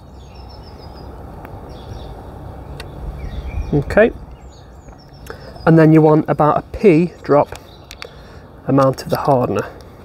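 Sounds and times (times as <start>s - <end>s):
birds chirping: 0.0s - 10.0s
steady low rumble: 0.1s - 8.8s
faint clicks: 7.5s - 8.2s.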